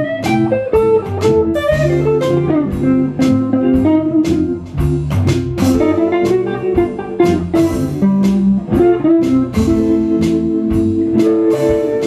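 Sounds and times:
bluesy guitar band music: 0.0s - 12.0s.

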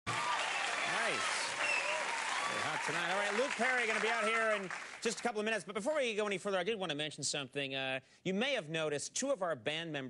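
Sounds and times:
audience applauding: 0.1s - 5.5s.

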